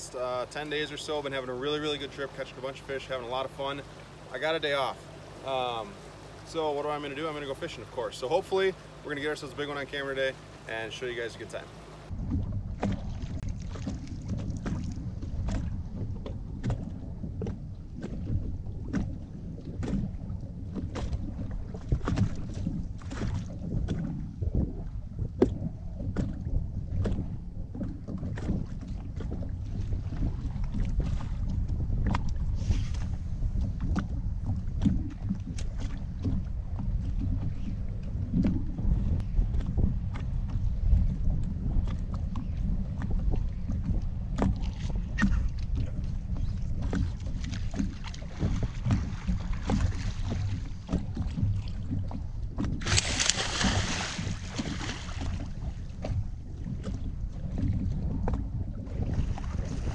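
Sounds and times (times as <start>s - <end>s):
waves lapping against boat hull: 0.0s - 59.9s
wind rumbling on microphone: 0.0s - 59.9s.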